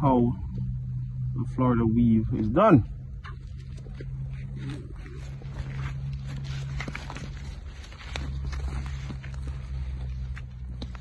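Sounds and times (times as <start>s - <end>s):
low rumble: 0.0s - 11.0s
dry straw crackling: 3.2s - 11.0s
foliage rustling: 3.2s - 11.0s.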